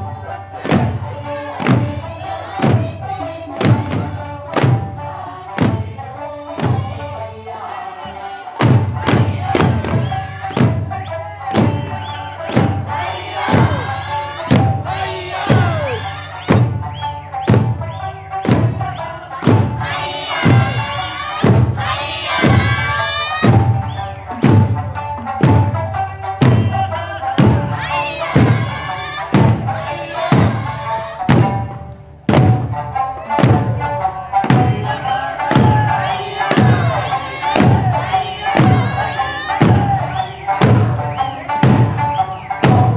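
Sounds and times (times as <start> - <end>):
folk song singing: 0.0 - 42.9
taiko drums struck together: 0.1 - 7.2, 8.0 - 42.9.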